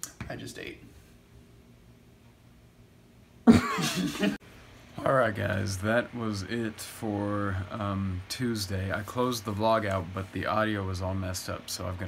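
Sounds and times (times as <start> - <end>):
faint room hum: 0.0 - 12.0
man coughing laugh: 3.5 - 4.4.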